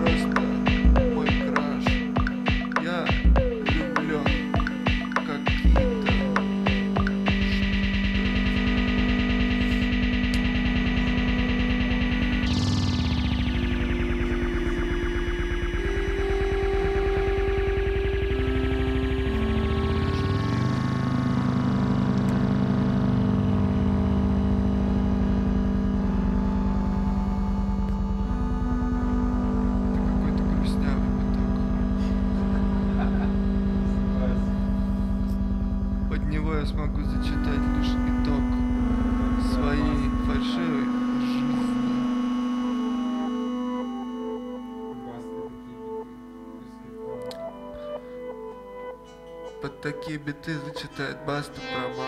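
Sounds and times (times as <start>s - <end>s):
synth sweep in upper tones: 0.0s - 48.9s, 50.3s - 52.0s
synthesizer drone: 0.0s - 52.0s.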